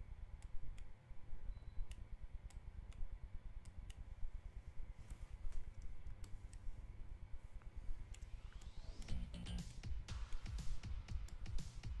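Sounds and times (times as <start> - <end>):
low steady rumble: 0.0 - 10.2
computer mouse clicking: 0.4 - 1.0, 5.0 - 6.7, 7.6 - 9.2.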